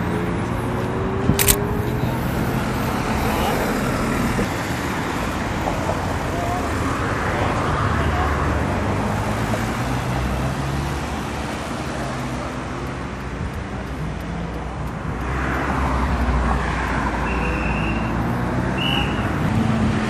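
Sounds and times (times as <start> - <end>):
highway traffic: 0.0 - 20.0.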